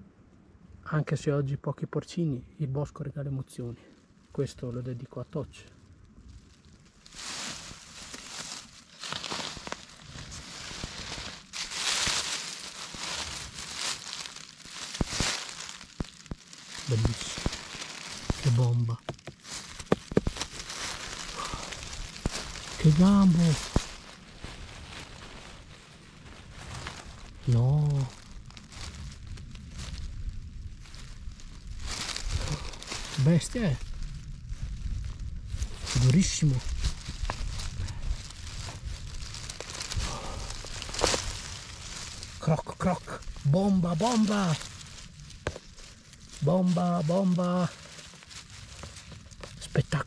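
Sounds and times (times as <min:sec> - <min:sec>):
leaves crackling: 0:03.5 - 0:50.0
low rumble: 0:05.8 - 0:42.4
dry leaves crunching and rustling: 0:05.8 - 0:50.0.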